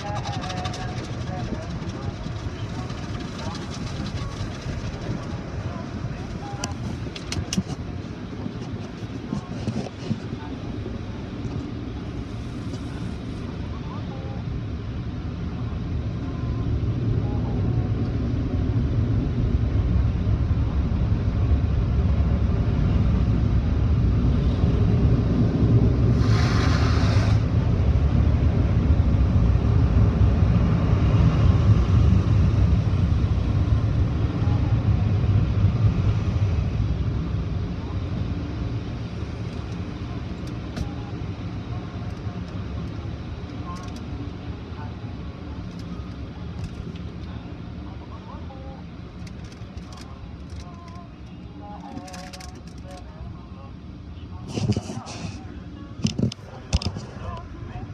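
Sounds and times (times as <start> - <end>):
car wash brushes rumbling: 0.0 - 13.5, 24.6 - 27.6
sharp hiss of spray: 26.2 - 27.4.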